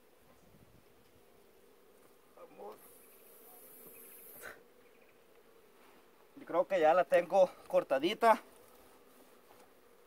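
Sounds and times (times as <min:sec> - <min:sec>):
honey bees buzzing: 0:00.0 - 0:10.0
soft high hiss: 0:00.0 - 0:10.0.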